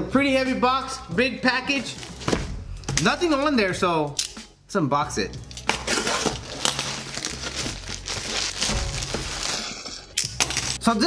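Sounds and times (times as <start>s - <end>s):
plastic bag crinkling: 5.9s - 10.8s.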